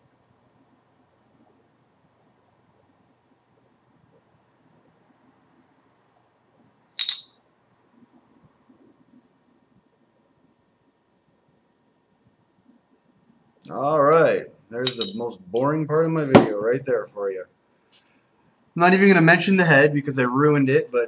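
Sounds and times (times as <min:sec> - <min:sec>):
glass clink: 0:07.0 - 0:07.4, 0:14.8 - 0:15.2.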